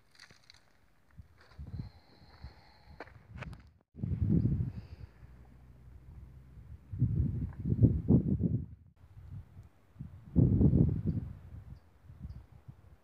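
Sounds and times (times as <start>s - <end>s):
low rumbling microphone noise: 1.7s - 11.7s.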